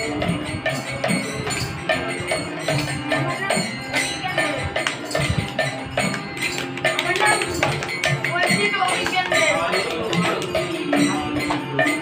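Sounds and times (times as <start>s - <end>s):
hand percussion and jingles: 0.0s - 12.0s
group singing: 5.6s - 12.0s.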